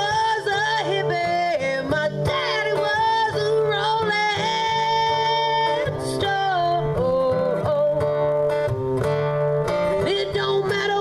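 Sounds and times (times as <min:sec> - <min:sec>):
guitar accompaniment: 0:00.0 - 0:11.0.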